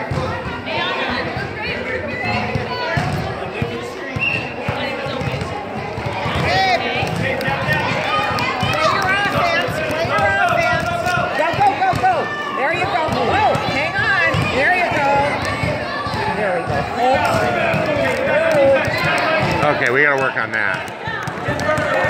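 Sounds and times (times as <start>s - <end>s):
basketball bouncing: 2.3s - 22.0s
overlapping voices: 5.3s - 12.3s, 13.0s - 22.0s.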